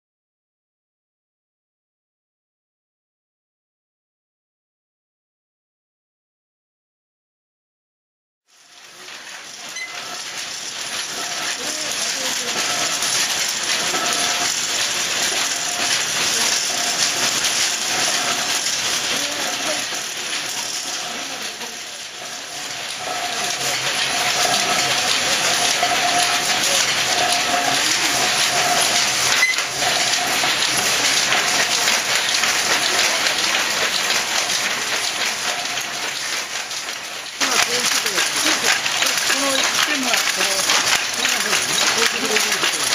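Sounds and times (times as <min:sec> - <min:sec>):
power looms clattering: 0:08.6 - 0:42.9.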